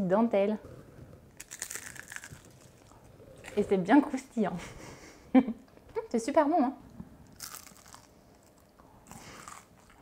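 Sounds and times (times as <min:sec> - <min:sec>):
crisp cheese crunching when chewed: 0:01.4 - 0:03.8, 0:07.3 - 0:10.0.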